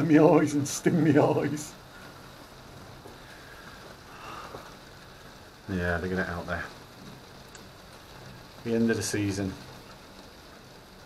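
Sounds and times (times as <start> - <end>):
rain on glass roof: 0.0 - 11.0.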